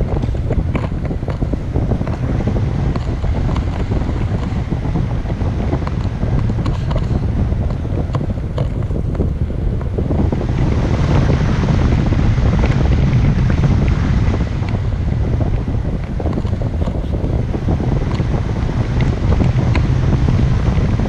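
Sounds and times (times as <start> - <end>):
low wind rumble on microphone: 0.0 - 21.0.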